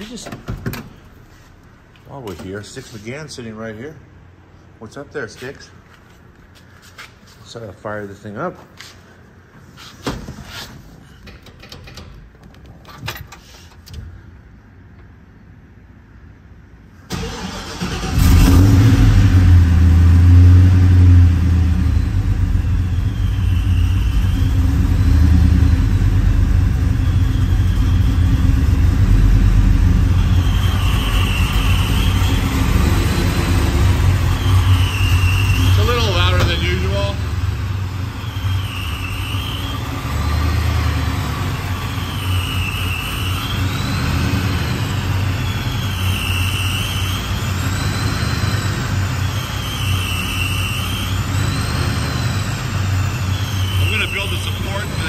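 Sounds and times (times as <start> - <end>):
car engine starting and idling: 17.0 - 55.0
faint high whistle: 21.7 - 37.2, 38.1 - 40.1, 41.5 - 55.0.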